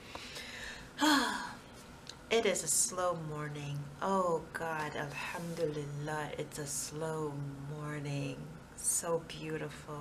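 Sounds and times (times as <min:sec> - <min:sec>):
woman sighing: 0:00.5 - 0:01.6.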